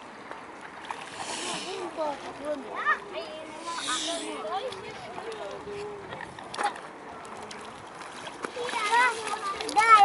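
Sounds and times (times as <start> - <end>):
feet splashing in water: 0.2 - 10.0.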